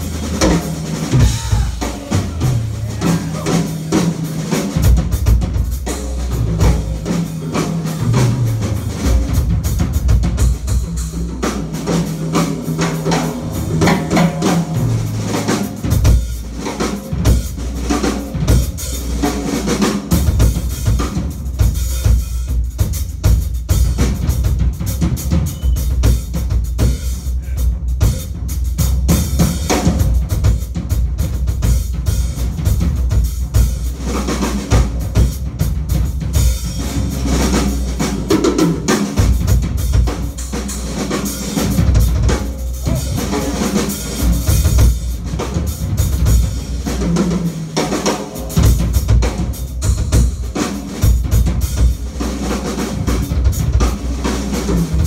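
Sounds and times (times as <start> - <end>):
drum kit solo: 0.0 - 55.0.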